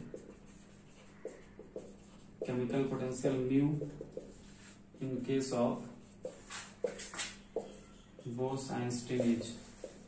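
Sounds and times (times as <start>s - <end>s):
marker writing on a whiteboard: 0.0s - 10.0s.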